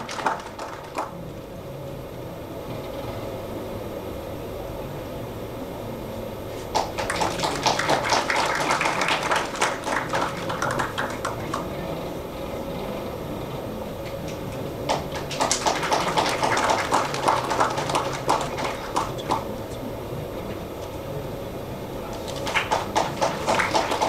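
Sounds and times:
audience clapping: 0.0s - 1.2s, 6.6s - 12.1s, 14.0s - 19.6s, 22.1s - 24.0s.

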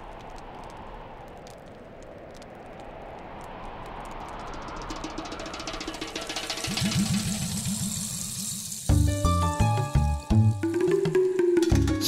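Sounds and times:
high hiss: 3.3s - 10.6s.

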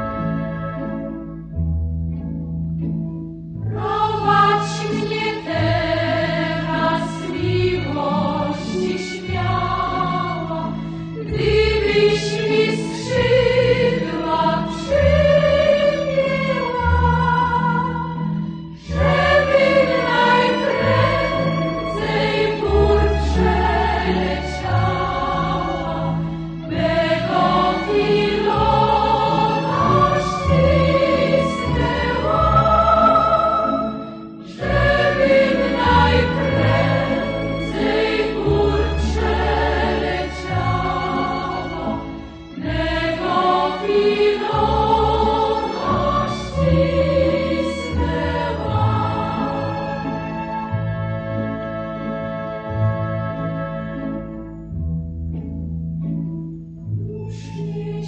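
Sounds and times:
choir singing: 3.7s - 54.4s, 57.3s - 58.0s.

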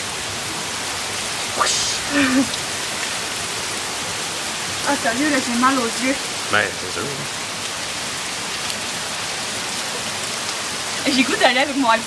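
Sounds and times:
heavy rain on the ground: 0.0s - 12.0s.

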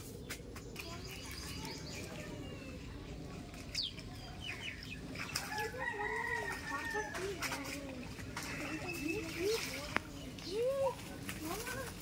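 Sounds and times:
wet net clicks and drips: 3.5s - 12.0s.

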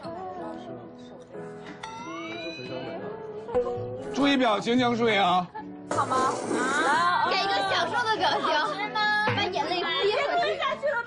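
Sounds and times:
people chattering: 5.9s - 11.0s.

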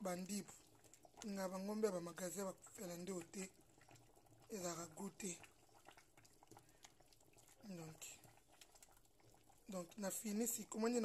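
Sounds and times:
soup simmering in metal pot: 0.0s - 11.0s.

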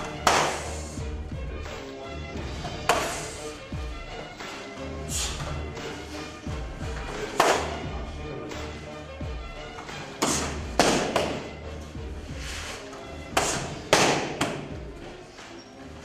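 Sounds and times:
background music: 0.0s - 16.0s
kicks smacking kick pad: 10.2s - 11.5s, 13.3s - 14.7s.

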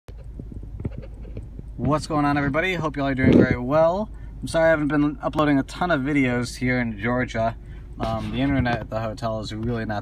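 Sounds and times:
low steady rumble: 0.1s - 10.0s
man speaking: 1.8s - 10.0s.

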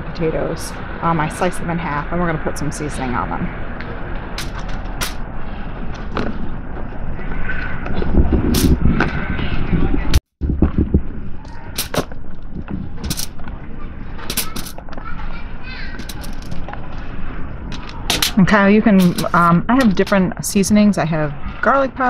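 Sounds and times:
steady low rumble: 0.0s - 21.7s.

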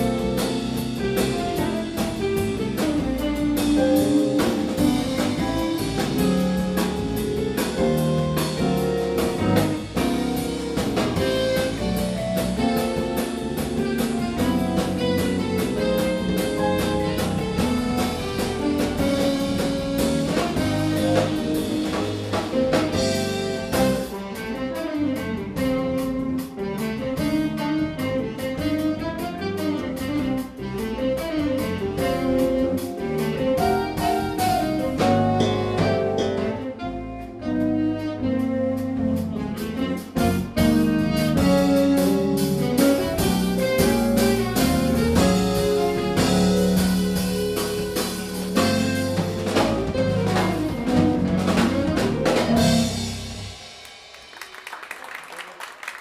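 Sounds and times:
jazz band playing: 0.0s - 55.2s
applause: 53.8s - 56.0s.

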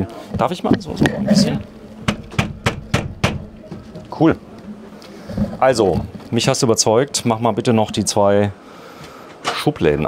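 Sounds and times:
hand knocking on roller shutter: 2.0s - 4.2s.

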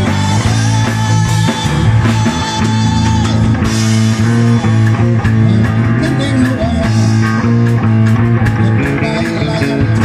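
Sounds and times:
bass guitar: 0.0s - 10.0s
electric guitar: 0.0s - 10.0s.

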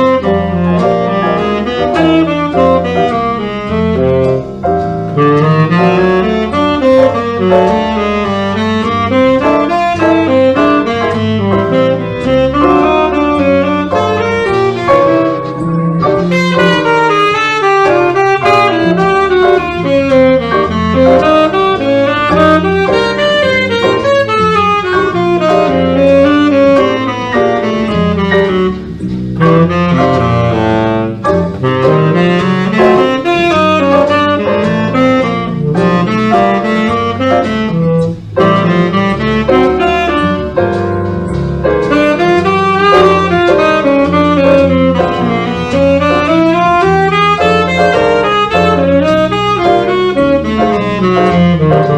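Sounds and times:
tenor saxophone jazz improvisation: 0.0s - 51.9s
walking bass line: 0.0s - 51.9s.

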